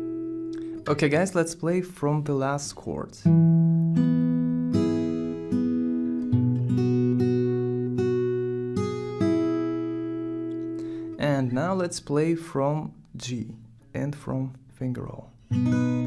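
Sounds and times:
fingerstyle acoustic guitar: 0.0 - 16.0.

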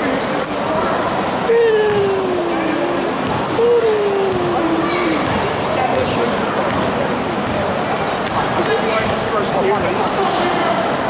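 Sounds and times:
sneakers squeaking: 0.0 - 1.0, 1.8 - 9.3.

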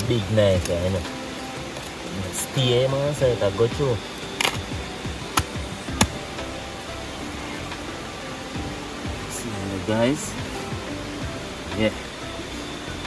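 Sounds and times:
background music with held notes: 0.0 - 13.0
knife chopping chicken on rock: 5.3 - 6.2.

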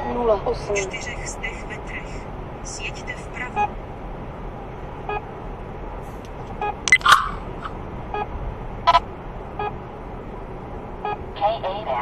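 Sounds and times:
car road noise: 0.0 - 12.0
short electronic beeps: 6.6 - 7.4
sharp sounds: 6.9 - 7.7.

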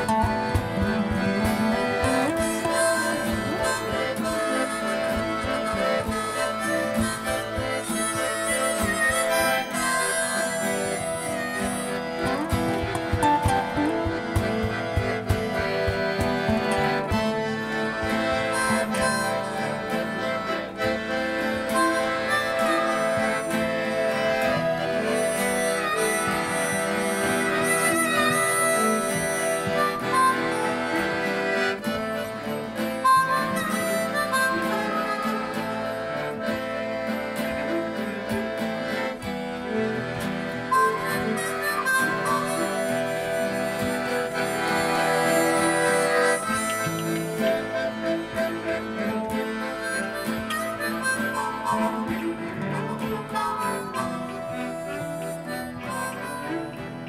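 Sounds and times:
accordion: 0.0 - 57.0
acoustic guitar: 0.0 - 57.0
harmonica lead: 0.0 - 57.0.

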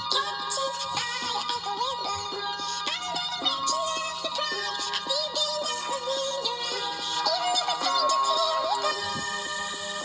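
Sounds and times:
electronic backing music: 0.0 - 10.0
sped-up high voices singing: 0.0 - 10.0.

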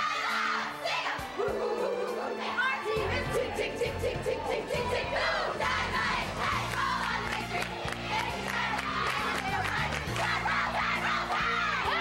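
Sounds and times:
women shouting a cheer: 8.7 - 12.0.

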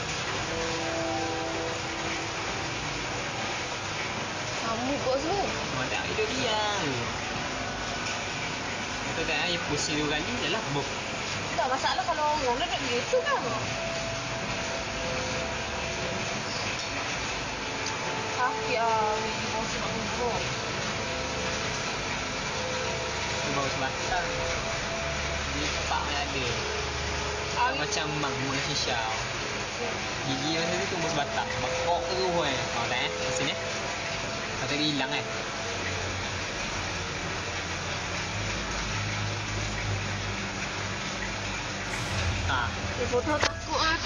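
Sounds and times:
background hiss: 0.0 - 21.0
low hum: 35.2 - 44.0.

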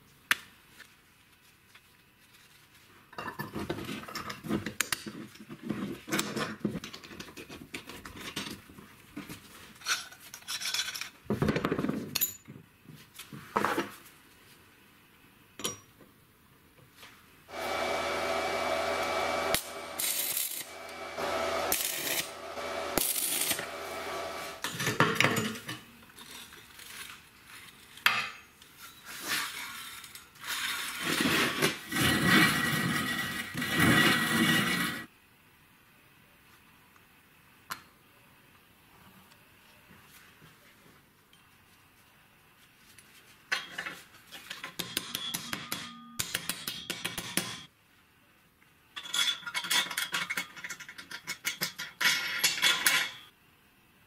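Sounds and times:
welding arc crackling: 17.5 - 24.6.

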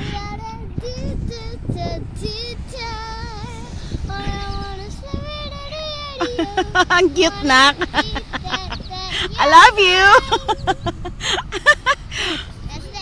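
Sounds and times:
girl singing unaccompanied: 0.0 - 11.1, 12.4 - 13.0.

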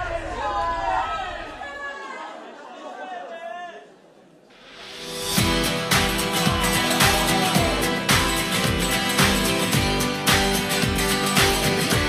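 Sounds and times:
voices shouting and chattering: 5.4 - 9.8
music with low bass: 5.4 - 12.0.

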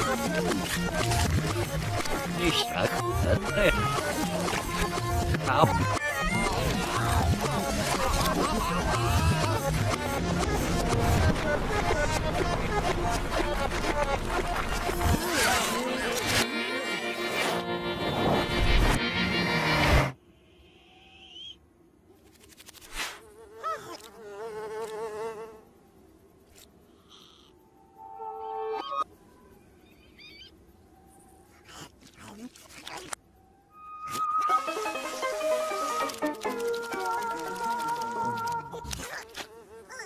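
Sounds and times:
loud cartoon music: 0.0 - 13.6.

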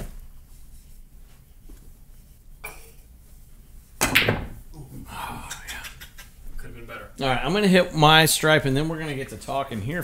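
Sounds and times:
cue striking billiard balls: 4.0 - 4.7.

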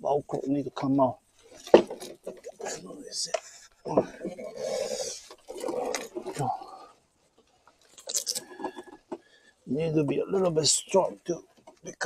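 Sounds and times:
rustling and rubbing of plastic: 1.3 - 3.0, 3.6 - 9.2.

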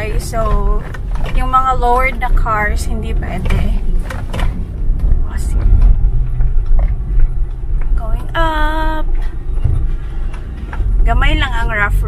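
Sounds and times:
tyres rumbling on rough road: 0.0 - 12.0.

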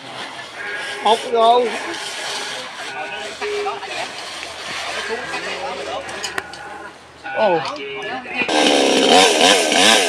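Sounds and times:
distant people talking: 0.0 - 9.5.

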